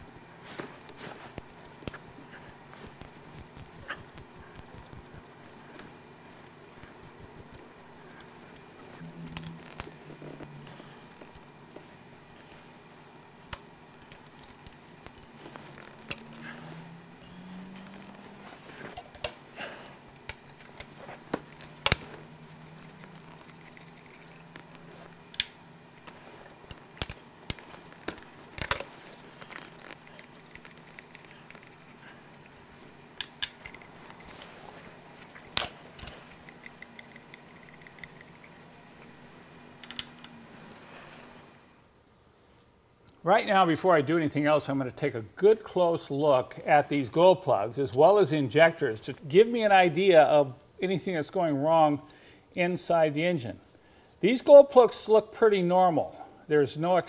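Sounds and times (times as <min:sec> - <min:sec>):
faint low hum: 0:00.0 - 0:57.0
metal tools clinking on engine: 0:17.2 - 0:23.4, 0:26.4 - 0:30.0, 0:35.6 - 0:36.5.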